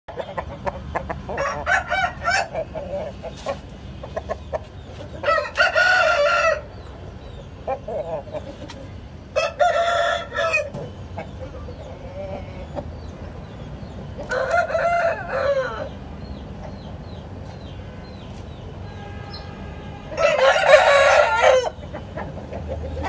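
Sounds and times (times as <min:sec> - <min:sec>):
rooster crowing: 0:01.3 - 0:02.6, 0:05.2 - 0:06.7, 0:09.4 - 0:10.8, 0:14.3 - 0:16.0, 0:20.1 - 0:21.8.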